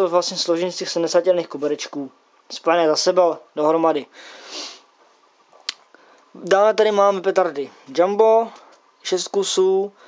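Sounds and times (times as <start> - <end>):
soft hiss: 0.0 - 10.0
man breathing: 4.1 - 4.9, 5.9 - 6.4.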